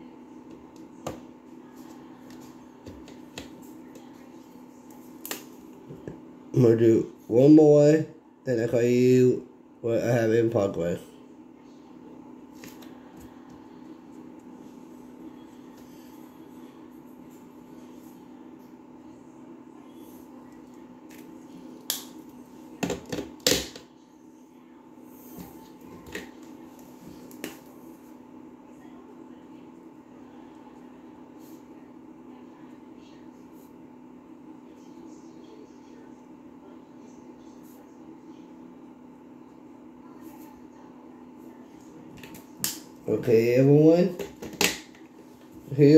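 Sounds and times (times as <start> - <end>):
room hum: 0.0 - 45.9.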